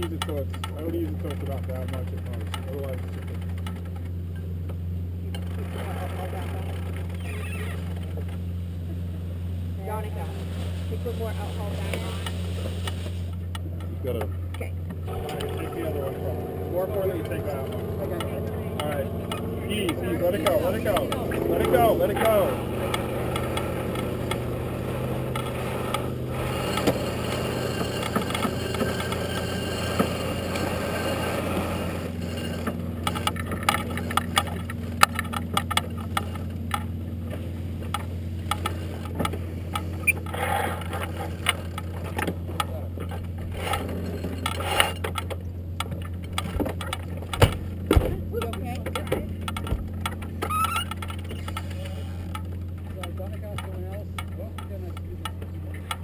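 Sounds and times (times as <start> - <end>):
wind and water rumble: 14.8 - 27.7
crew voices: 15.1 - 32.8
deck gear clicks and knocks: 44.4 - 56.0.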